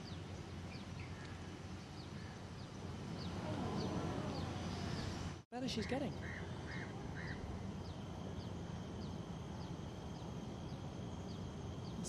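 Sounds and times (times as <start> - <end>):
low outdoor background noise: 0.0 - 12.0.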